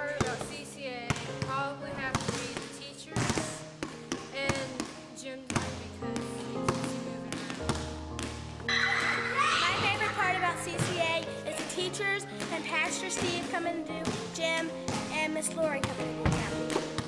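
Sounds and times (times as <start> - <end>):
background music: 0.0 - 17.0
basketball bouncing on gym floor: 0.0 - 17.0.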